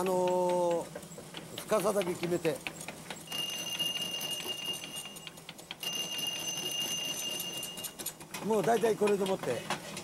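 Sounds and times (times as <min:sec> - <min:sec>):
high metallic ringing tone: 0:03.3 - 0:08.1.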